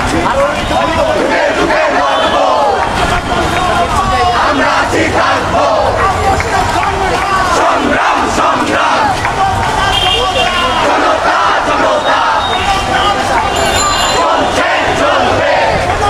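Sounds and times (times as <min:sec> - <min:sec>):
crowd shouting slogans: 0:00.0 - 0:16.0.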